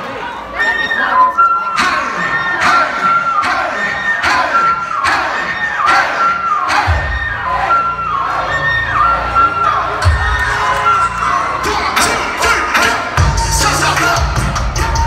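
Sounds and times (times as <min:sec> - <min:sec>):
crowd cheering: 0:01.7 - 0:15.0
hip-hop backing track: 0:09.7 - 0:15.0.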